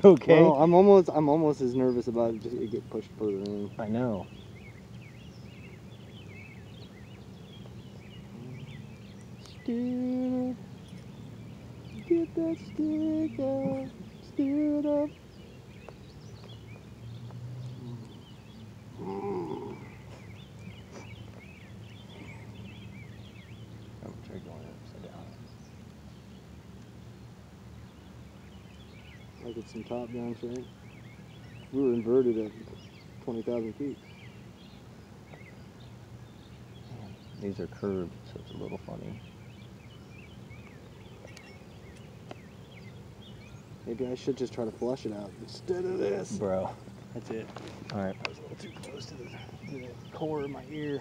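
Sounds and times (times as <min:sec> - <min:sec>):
birds chirping: 0:00.0 - 0:51.0
low outdoor rumble: 0:00.0 - 0:51.0
faint clicks: 0:10.8 - 0:11.1
person groaning: 0:19.0 - 0:19.9.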